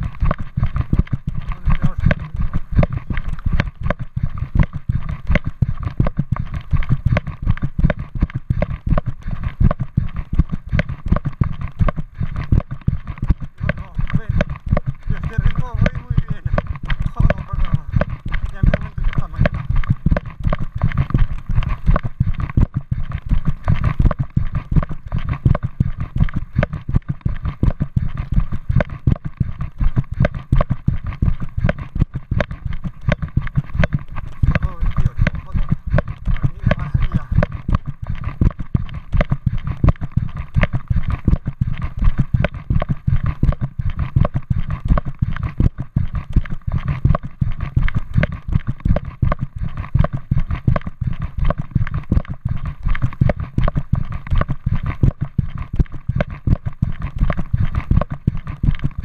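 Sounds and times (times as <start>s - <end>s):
handheld camera knocking: 0.0s - 59.0s
rapid footsteps on path: 0.0s - 59.0s.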